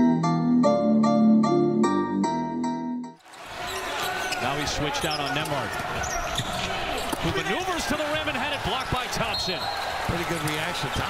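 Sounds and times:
players calling out: 3.4 - 11.0.

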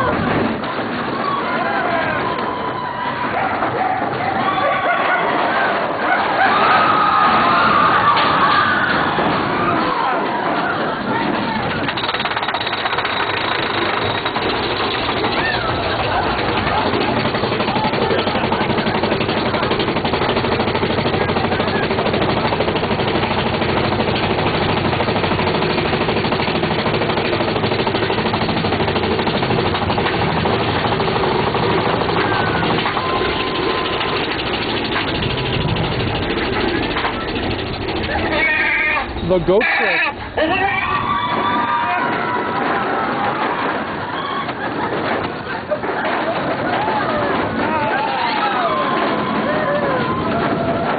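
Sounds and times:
roller coaster cars rattling: 0.0 - 50.9.

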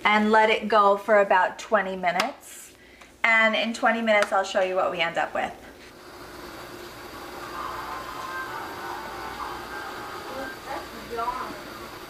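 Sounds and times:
water boiling in a covered pan: 5.9 - 12.0.

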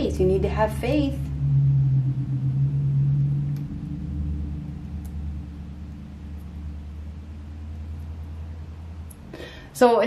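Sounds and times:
low rumbling hum: 0.0 - 10.0.

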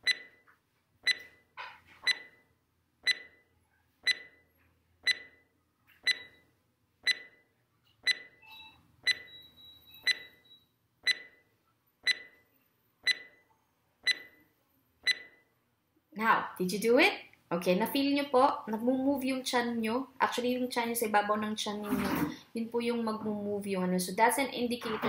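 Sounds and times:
short electronic beeps: 0.0 - 0.4, 1.1 - 1.4, 2.0 - 2.4, 3.1 - 3.4, 4.1 - 4.4, 5.1 - 5.4, 6.1 - 6.5, 7.1 - 7.4, 8.1 - 11.4, 12.1 - 12.4, 13.1 - 13.4, 14.1 - 14.4, 15.1 - 15.4.

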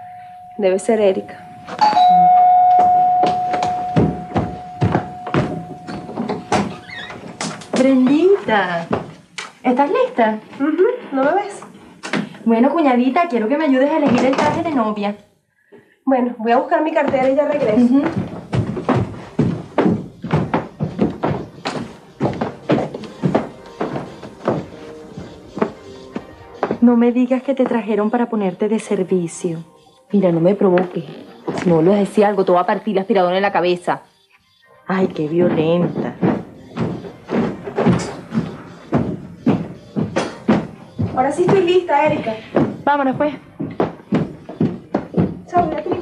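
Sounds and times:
music: 0.0 - 15.0, 16.5 - 46.0
thuds: 2.8 - 8.1.

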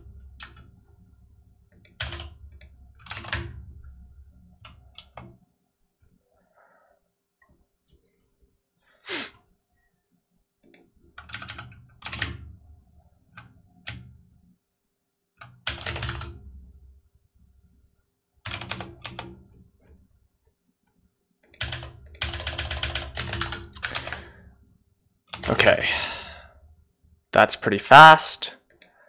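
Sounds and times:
typing on computer keyboard: 1.7 - 3.6, 4.6 - 5.4, 10.6 - 12.4, 15.4 - 16.5, 18.4 - 19.4, 21.4 - 24.3, 25.3 - 25.6.

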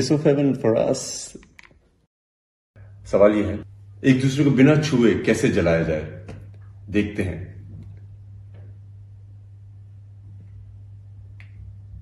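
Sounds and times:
steady low hum: 2.8 - 12.0.

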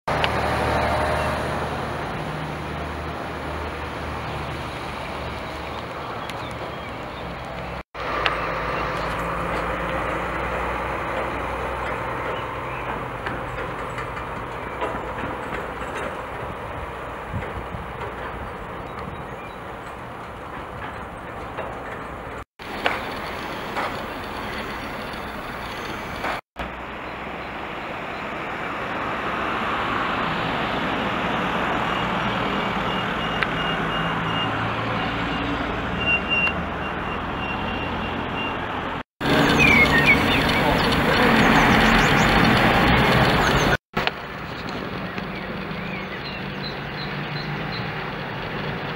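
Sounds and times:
road traffic: 0.0 - 48.9
diesel truck engine running: 0.1 - 27.0, 36.6 - 46.6
reversing beeper: 32.0 - 38.6.

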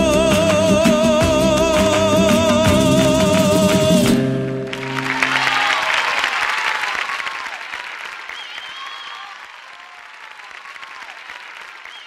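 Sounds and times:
audience applauding: 1.6 - 12.0
cheers and whistles: 4.7 - 12.0.

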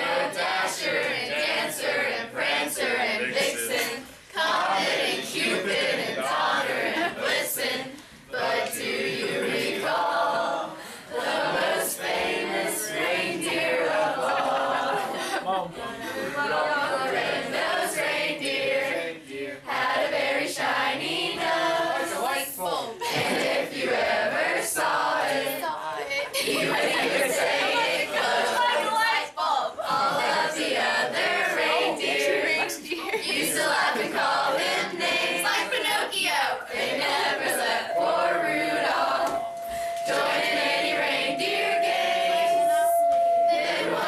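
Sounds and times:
teenagers singing a carol: 0.0 - 44.0.

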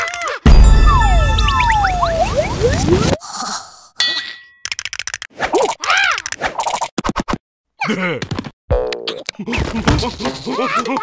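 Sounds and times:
rapid cartoon clicking and scratching: 4.6 - 7.4.

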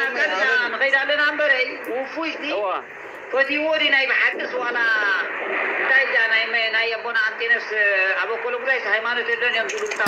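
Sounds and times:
man talking through speaker: 0.0 - 10.0.

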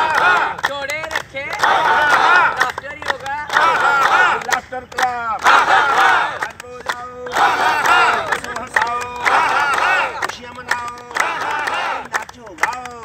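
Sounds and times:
hand claps: 0.0 - 13.0
people shouting: 3.6 - 4.4, 5.4 - 6.4.

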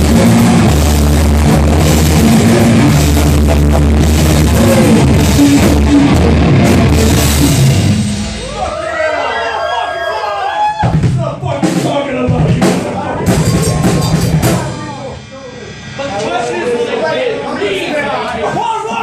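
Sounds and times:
amplified guitar and bass: 0.0 - 8.8
heavy metal band playing: 0.0 - 19.0
loose drum hits: 11.8 - 16.0.

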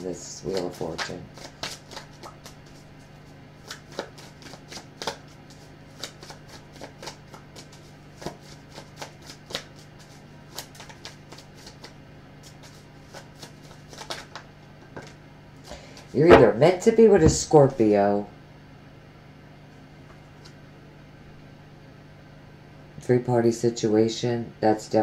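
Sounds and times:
faint steady hum: 0.0 - 25.0
cards being shuffled: 0.4 - 2.9, 3.6 - 15.2.

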